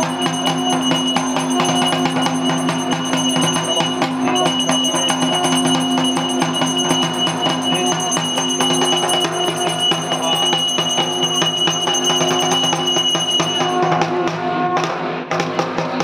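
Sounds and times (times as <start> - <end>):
bell-like metal ringing: 0.0 - 14.8
barrel drum beaten fast: 0.0 - 16.0.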